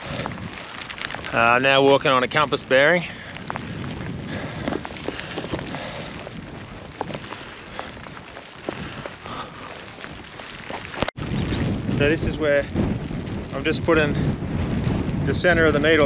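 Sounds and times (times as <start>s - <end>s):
wind rushing over microphone: 0.0s - 16.0s.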